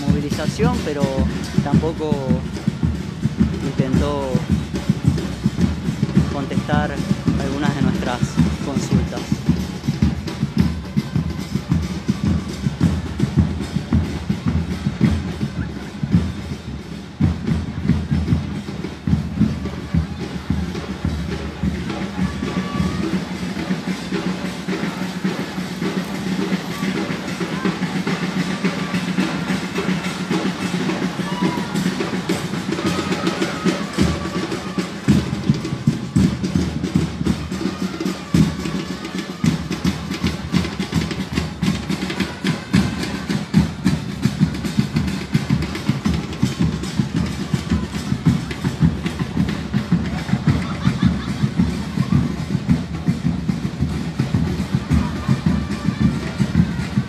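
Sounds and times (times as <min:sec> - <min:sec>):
crowd chatter: 0:00.0 - 0:57.0
drums beaten fast: 0:00.0 - 0:57.0.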